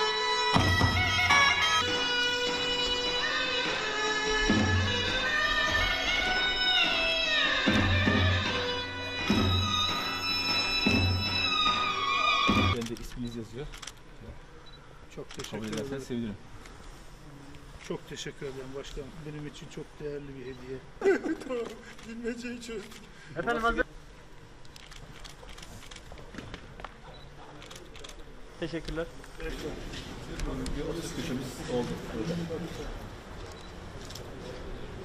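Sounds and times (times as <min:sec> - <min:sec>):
folk dance music: 0:00.0 - 0:12.8.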